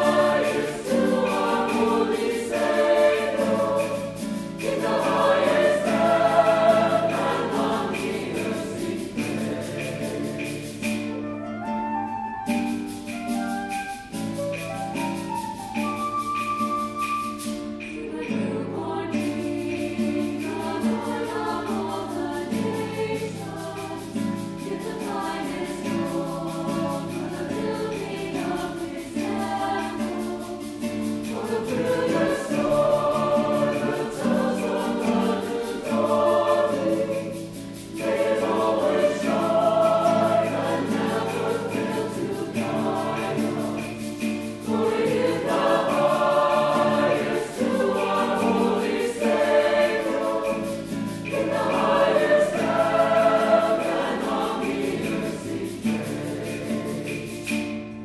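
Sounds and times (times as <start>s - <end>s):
mixed choir singing: 0.0s - 11.2s, 17.8s - 57.8s.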